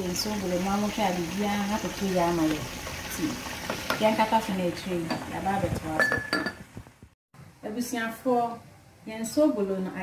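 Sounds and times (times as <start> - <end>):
woman talking: 0.0 - 6.2, 7.6 - 10.0
cookware clinking: 5.9 - 6.6.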